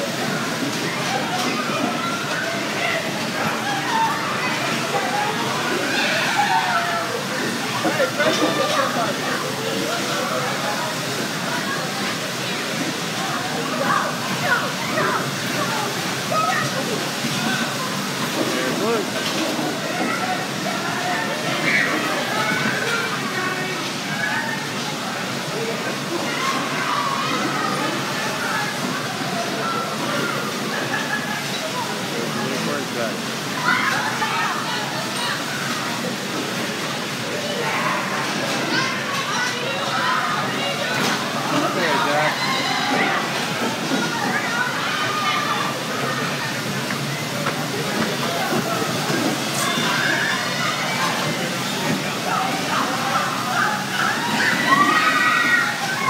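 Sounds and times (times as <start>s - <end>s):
riders voices and shouts: 0.0s - 56.0s
bumper cars running: 40.3s - 56.0s.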